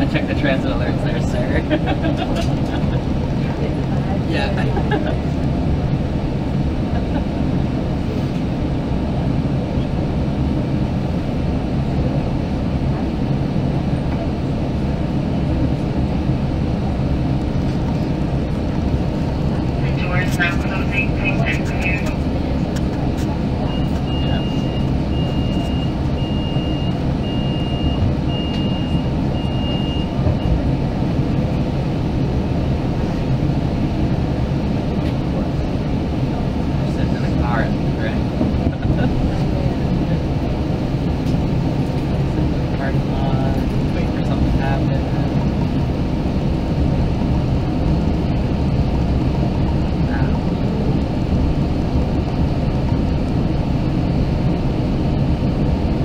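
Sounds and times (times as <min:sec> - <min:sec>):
train car low rumble: 0:00.0 - 0:56.0
faint voices: 0:19.3 - 0:24.7.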